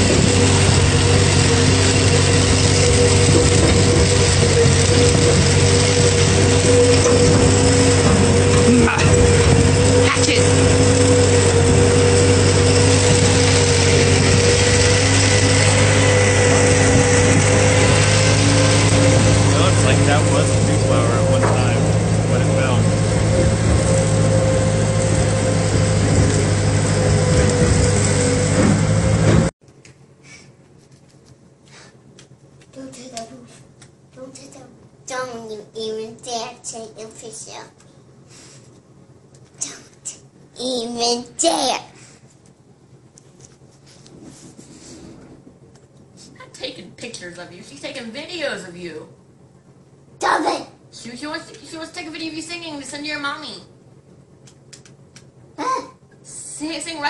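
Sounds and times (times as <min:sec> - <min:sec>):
tractor engine running: 0:00.0 - 0:29.6
trailer knocks: 0:11.3 - 0:29.5.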